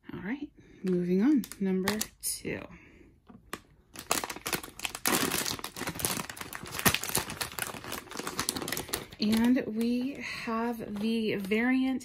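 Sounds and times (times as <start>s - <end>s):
plastic bag crinkling: 1.2s - 2.4s, 3.4s - 12.0s.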